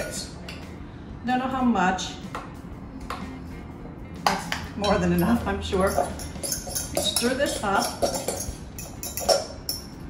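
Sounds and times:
utensil clinking and scraping glass bowl: 0:04.8 - 0:10.0.

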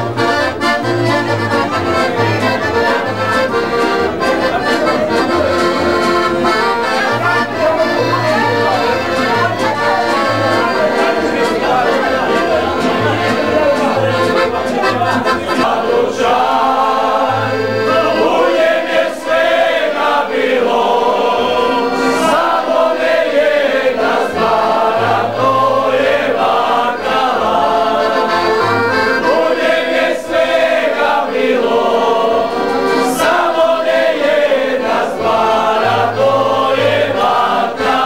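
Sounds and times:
plucked upright bass: 0:00.0 - 0:16.5, 0:24.2 - 0:29.4
accordion: 0:00.0 - 0:38.0
men singing together: 0:07.4 - 0:38.0.

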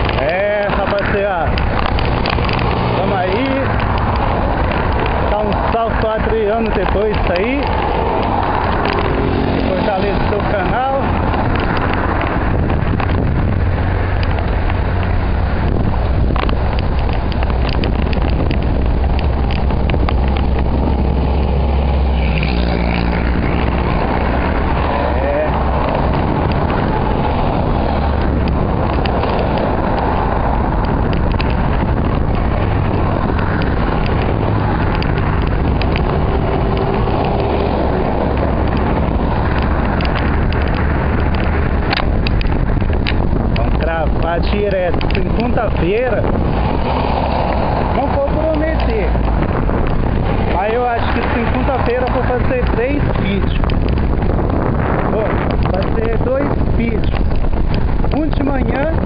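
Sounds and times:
cars passing: 0:00.0 - 0:59.0
motorcycles passing: 0:00.0 - 0:59.0
wind rush on microphone: 0:00.0 - 0:59.0.

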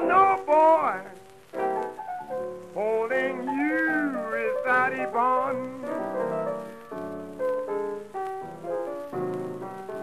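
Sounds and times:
man singing blues: 0:00.0 - 0:01.3, 0:02.8 - 0:06.2
piano chords: 0:00.0 - 0:10.0.

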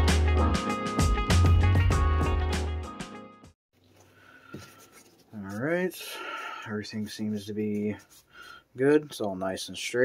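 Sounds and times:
background music: 0:00.0 - 0:03.6.

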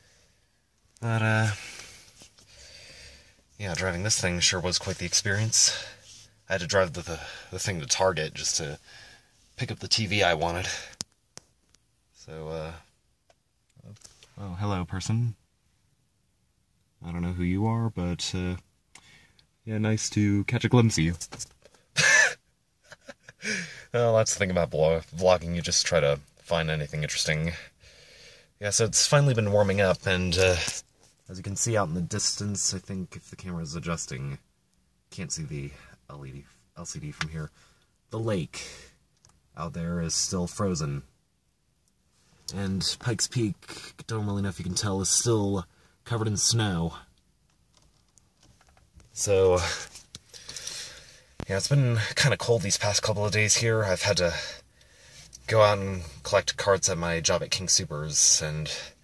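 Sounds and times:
man speaking: 0:01.0 - 0:01.8, 0:03.6 - 0:08.8, 0:09.6 - 0:10.9, 0:12.2 - 0:12.9, 0:13.8 - 0:15.4, 0:17.0 - 0:18.6, 0:19.6 - 0:21.5, 0:23.4 - 0:27.7, 0:28.6 - 0:34.4, 0:35.1 - 0:37.5, 0:39.6 - 0:41.1, 0:42.5 - 0:47.1, 0:49.2 - 0:49.9, 0:51.4 - 0:54.6, 0:55.5 - 0:59.0.

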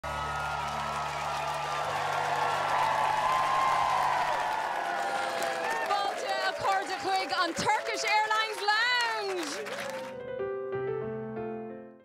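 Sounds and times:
crowd applauding and cheering: 0:00.0 - 0:10.5.

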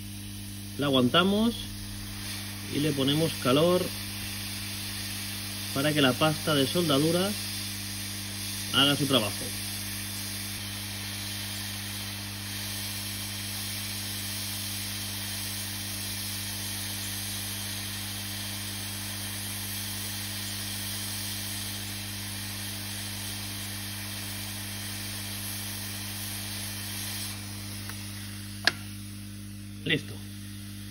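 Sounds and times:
hot air hissing: 0:00.0 - 0:30.9
sharp click: 0:28.6 - 0:28.9.

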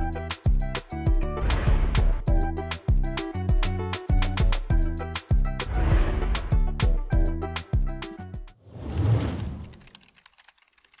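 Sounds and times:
whoosh sound effect: 0:05.6 - 0:06.6.

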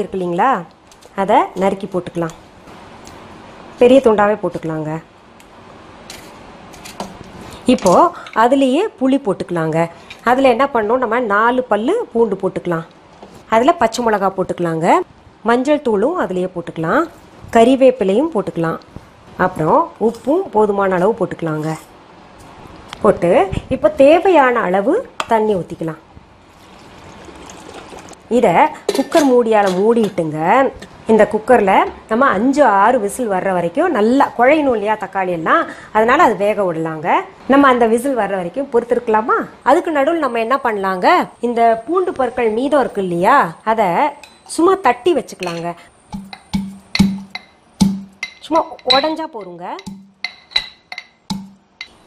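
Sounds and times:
water pouring into a pan: 0:26.6 - 0:28.2
metal pestle striking mortar: 0:45.4 - 0:52.0.

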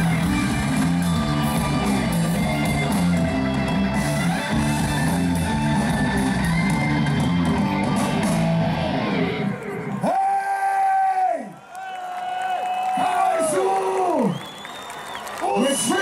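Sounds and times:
live rock band playing: 0:00.0 - 0:09.8.

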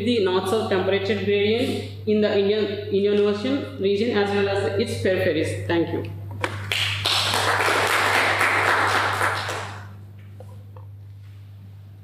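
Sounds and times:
steady low electrical hum: 0:00.0 - 0:12.0
small audience applauding: 0:06.5 - 0:10.0.

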